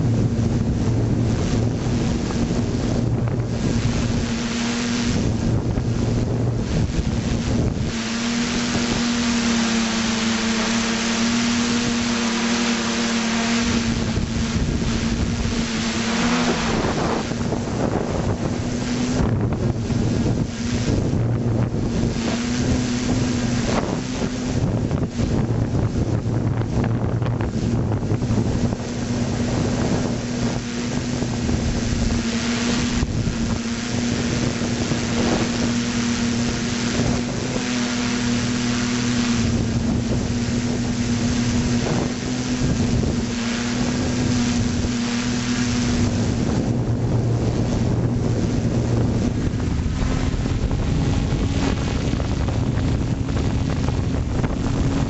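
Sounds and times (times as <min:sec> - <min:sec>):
drone propellers humming: 0:00.0 - 0:55.0
wind buffeting microphone: 0:00.0 - 0:55.0.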